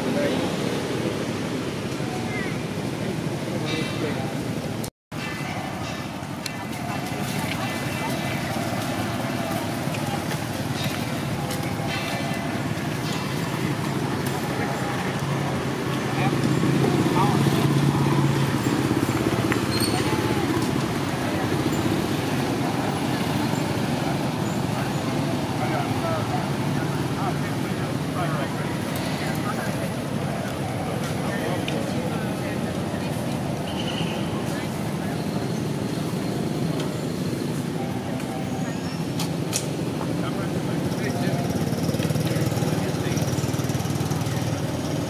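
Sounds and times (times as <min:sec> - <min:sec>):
vehicle engine hum: 0:05.5 - 0:45.0.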